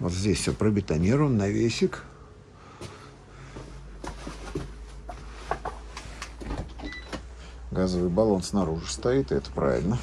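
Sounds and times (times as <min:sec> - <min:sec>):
low steady hum: 0:00.0 - 0:10.0
light footsteps: 0:02.7 - 0:06.4.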